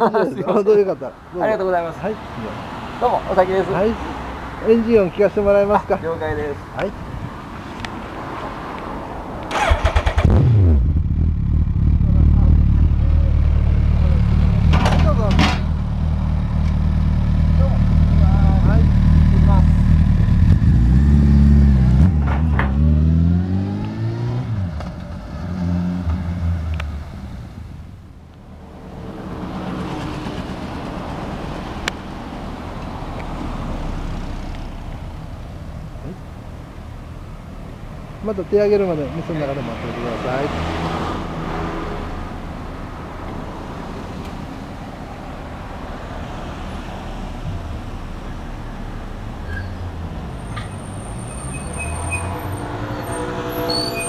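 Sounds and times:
motorcycle engine idling and revving: 9.4 - 32.8.

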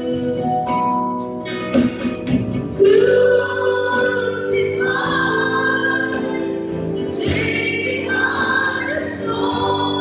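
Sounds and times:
acoustic guitar: 0.0 - 10.0
keyboard: 0.0 - 10.0
voices singing together: 2.8 - 10.0.

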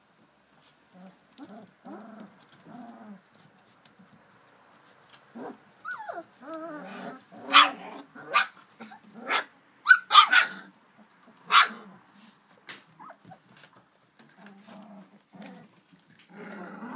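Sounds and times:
puppies growling: 0.9 - 4.1, 5.1 - 9.6, 13.0 - 16.9
puppies yapping: 5.4 - 10.7.

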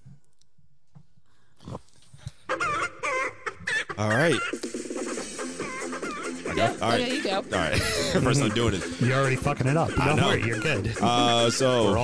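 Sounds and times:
person laughing: 5.6 - 8.9, 10.0 - 11.6.

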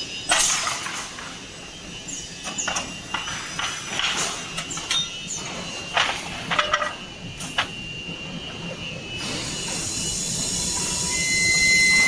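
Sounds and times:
machinery hissing: 0.0 - 12.0
thin high squealing tones: 1.8 - 3.6, 4.3 - 8.0, 9.2 - 12.0.

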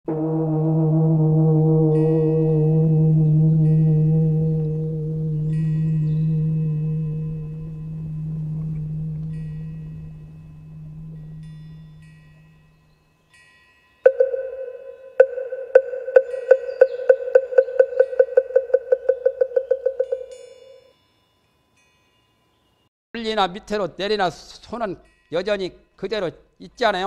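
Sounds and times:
deep bell ringing: 0.7 - 13.5
high tinkling chimes: 5.4 - 22.9.

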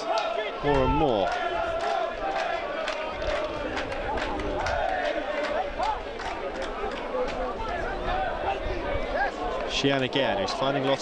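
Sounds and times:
players calling: 0.0 - 11.0
spectators chattering and shouting: 0.0 - 11.0.

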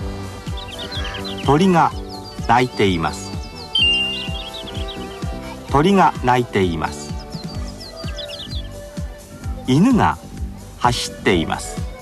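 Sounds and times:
background music with steady beat: 0.0 - 12.0
small bird chirping: 0.6 - 5.2, 7.1 - 8.8.

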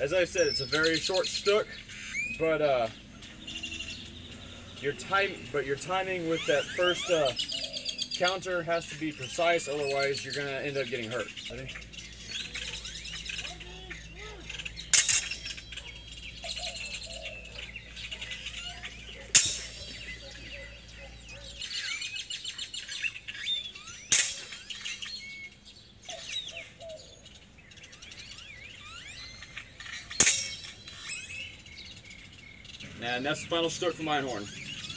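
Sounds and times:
birds chirping: 0.0 - 34.9
sword blades clashing: 14.9 - 15.4, 19.3 - 19.9, 24.1 - 24.5, 30.2 - 30.6.

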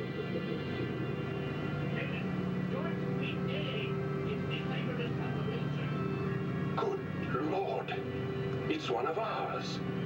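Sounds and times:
faint music: 0.0 - 10.0
low hum and drone: 0.0 - 10.0.

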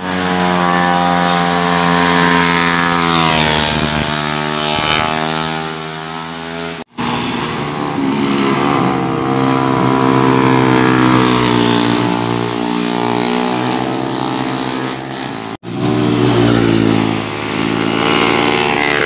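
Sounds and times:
motorcycle engines running hard: 0.0 - 19.0.

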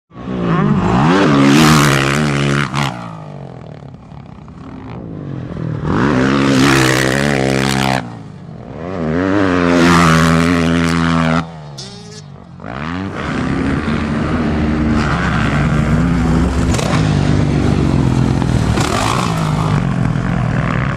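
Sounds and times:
dirt bike engine revving: 0.2 - 20.9.

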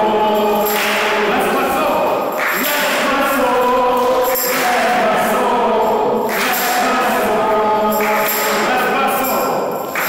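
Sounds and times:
voices singing a hymn: 0.0 - 10.0.

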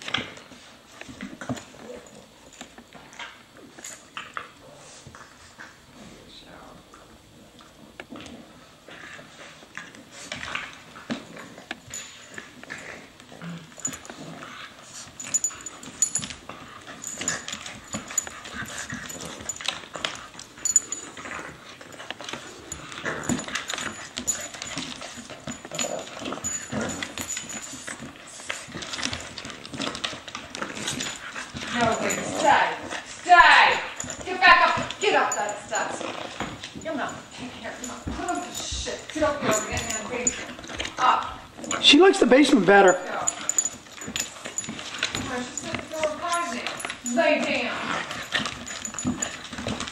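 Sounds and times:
dogs scuffling: 8.1 - 49.9.

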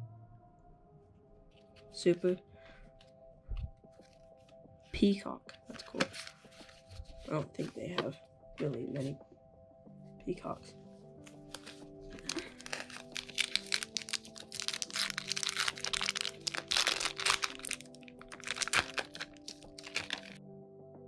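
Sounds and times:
background music: 0.0 - 21.0
foil wrapper crinkling: 11.5 - 20.4.

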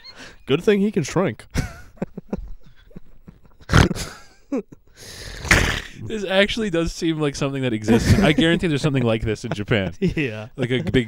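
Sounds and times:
men laughing hard: 1.5 - 4.8, 7.9 - 11.0.

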